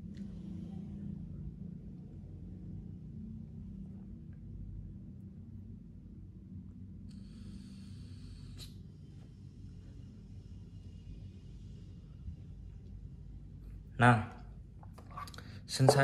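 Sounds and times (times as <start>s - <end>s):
low room hum: 0.0s - 16.0s
faint hiss of vape puff: 7.1s - 9.4s.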